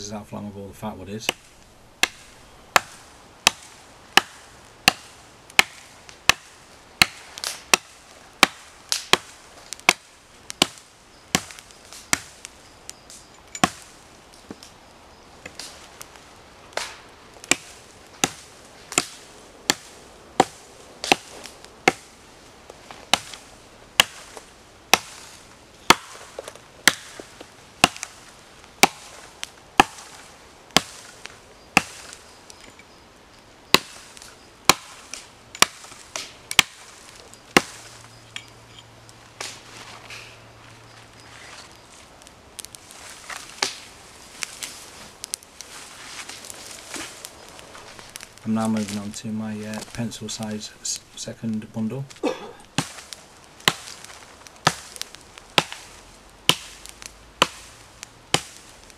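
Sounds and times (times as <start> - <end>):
twigs snapping in fire: 1.2 - 58.9.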